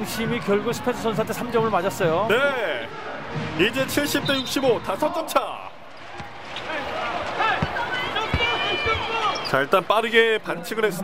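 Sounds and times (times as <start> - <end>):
crowd shouting: 4.4 - 9.9
sneakers squeaking on court: 5.8 - 9.8.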